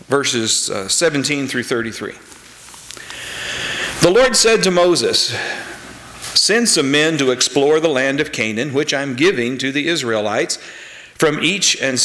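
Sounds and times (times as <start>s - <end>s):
man speaking: 0.0s - 2.3s, 3.9s - 12.0s
man inhaling deeply: 3.0s - 4.0s, 10.6s - 11.2s.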